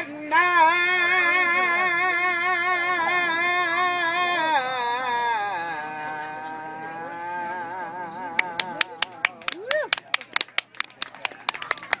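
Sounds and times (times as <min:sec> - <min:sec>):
people clapping: 0:08.2 - 0:12.0.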